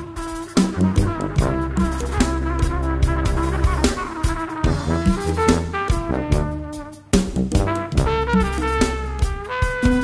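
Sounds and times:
drum kit: 0.0s - 10.0s
jazz brass ensemble: 0.0s - 10.0s.

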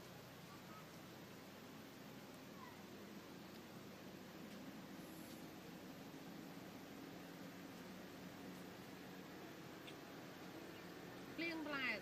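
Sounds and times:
small animal calls: 2.5s - 2.9s.

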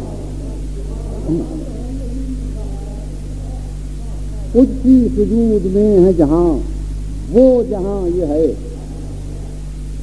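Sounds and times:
faint background voices: 0.0s - 4.8s
electrical mains hum: 0.0s - 10.0s.

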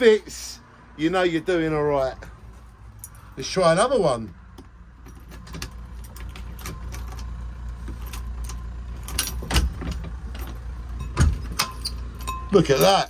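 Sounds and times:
keys jangling in a lock: 2.8s - 3.5s, 4.6s - 13.0s.

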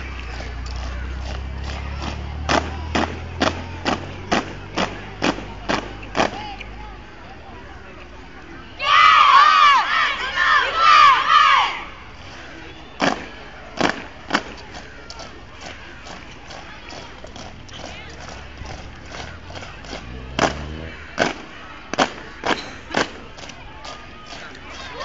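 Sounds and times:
many voices shouting together: 8.8s - 12.0s
marching boots stamping on pavement: 12.9s - 24.6s.

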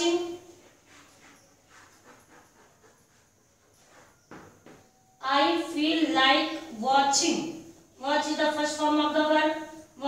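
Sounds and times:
chalk scratching on blackboard: 0.4s - 4.5s.

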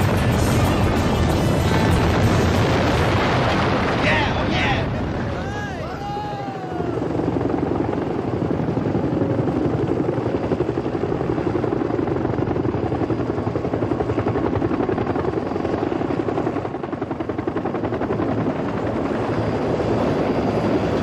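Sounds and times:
helicopter rotors chopping: 0.0s - 21.0s.

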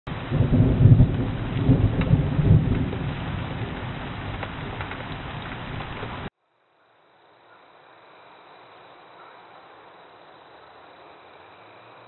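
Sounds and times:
steady rain: 0.1s - 6.3s.

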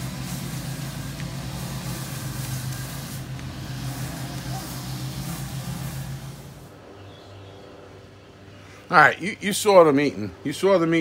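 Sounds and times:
hiss: 0.0s - 6.7s
low mechanical hum: 0.0s - 10.9s.

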